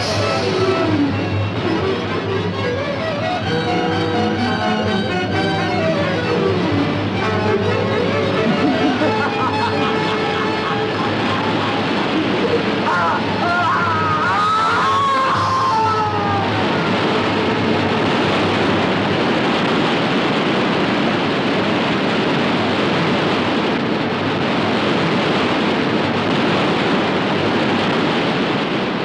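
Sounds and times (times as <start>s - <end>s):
waterfall rushing: 0.0s - 29.0s
man's long falling cry: 12.5s - 17.0s.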